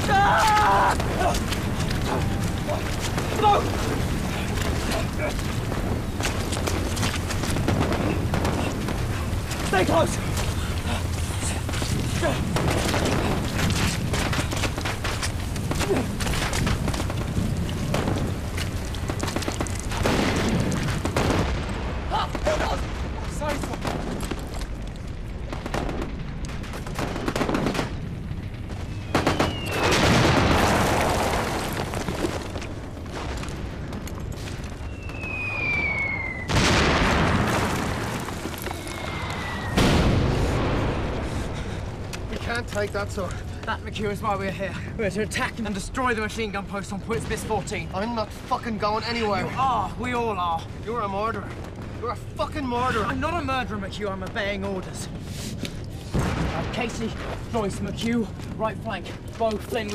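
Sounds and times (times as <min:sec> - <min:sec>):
shell explosions: 0:00.0 - 0:43.6, 0:56.0 - 0:58.6
rifle and machine-gun fire: 0:00.9 - 0:24.6, 0:25.4 - 0:34.0, 0:36.5 - 0:38.7
shells whistling down: 0:28.9 - 0:30.0, 0:34.8 - 0:36.6.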